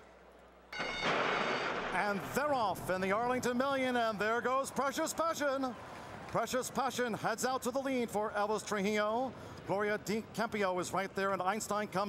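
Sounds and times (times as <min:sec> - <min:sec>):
start bell ringing: 0:00.8 - 0:01.9
starting gate crashing open: 0:00.8 - 0:02.4.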